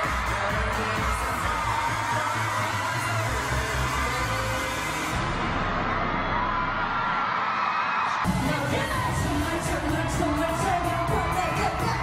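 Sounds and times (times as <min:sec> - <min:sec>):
live pop music bass beat: 0:00.0 - 0:06.8, 0:08.2 - 0:12.0
crowd screaming: 0:00.0 - 0:12.0.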